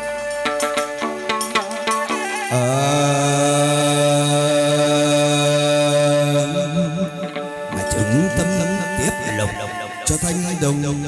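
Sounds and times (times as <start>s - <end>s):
person singing ritual song: 2.4s - 11.0s.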